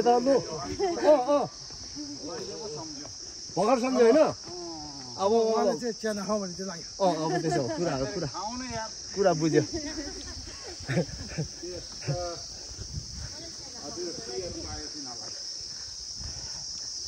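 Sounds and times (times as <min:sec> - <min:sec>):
high-pitched insect chorus: 0:00.0 - 0:17.0
people talking and calling: 0:00.0 - 0:17.0.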